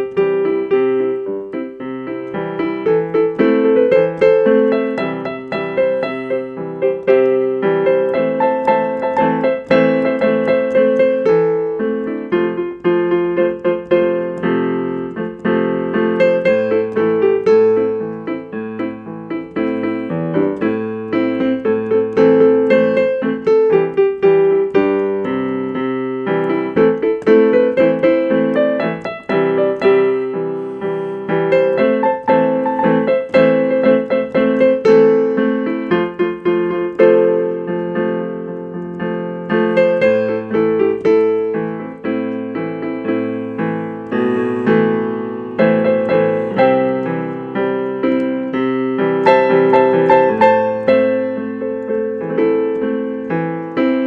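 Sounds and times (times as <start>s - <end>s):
electronic keyboard piano tune: 0.0s - 54.0s.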